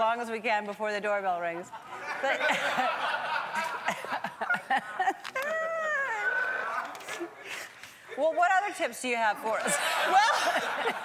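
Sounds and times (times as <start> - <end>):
woman's high drawn-out cry: 5.4 - 6.9.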